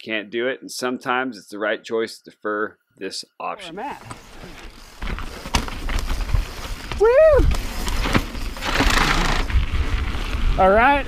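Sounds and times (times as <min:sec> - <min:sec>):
wind and tyre rumble: 0:04.1 - 0:11.0
wheels knocking on rocks: 0:05.0 - 0:09.9.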